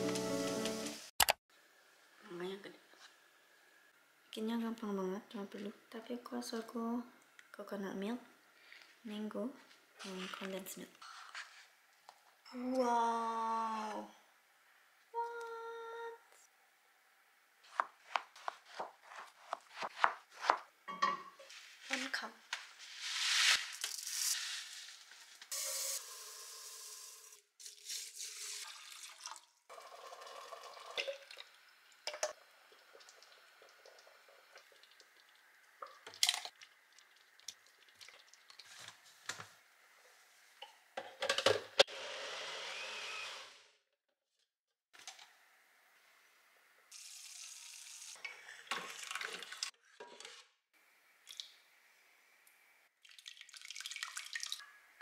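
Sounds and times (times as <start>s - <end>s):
water poured into strainer: 27.7s - 31.5s, 48.7s - 49.7s, 53.0s - 54.6s
blender running: 41.9s - 43.7s.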